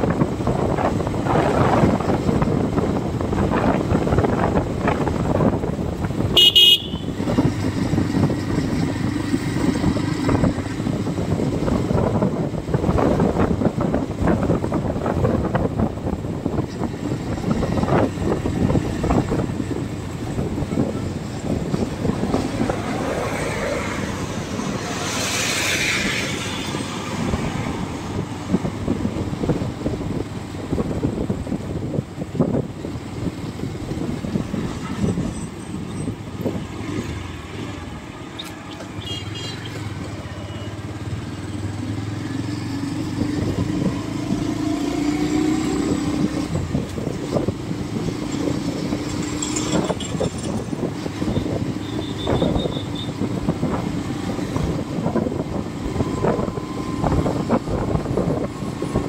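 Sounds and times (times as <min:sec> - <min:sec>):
engine hum: 0:00.0 - 0:59.0
vehicle road noise rumble: 0:00.0 - 0:59.0
car passing by: 0:22.2 - 0:28.3.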